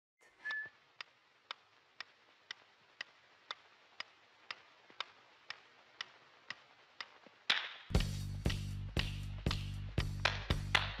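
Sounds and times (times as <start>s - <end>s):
metronome ticking: 0.5s - 7.2s.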